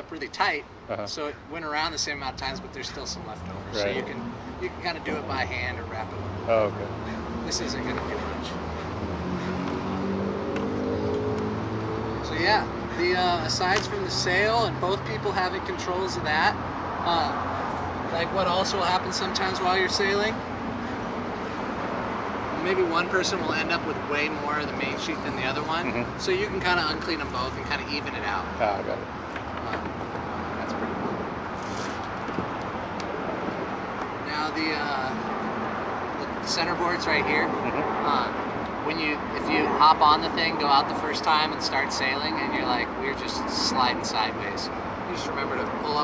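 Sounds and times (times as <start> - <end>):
traffic-like hiss: 0.0 - 9.9, 12.3 - 46.0.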